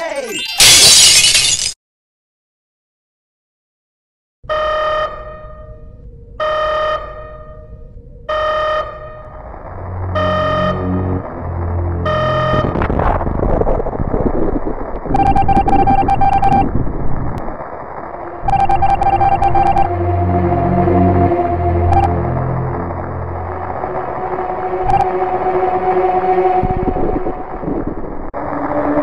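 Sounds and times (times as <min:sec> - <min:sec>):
low synthesized drone: 0:04.5 - 0:13.8, 0:17.4 - 0:29.0
electronic beep: 0:15.1 - 0:16.7, 0:18.4 - 0:20.0, 0:21.8 - 0:22.1, 0:24.8 - 0:25.2.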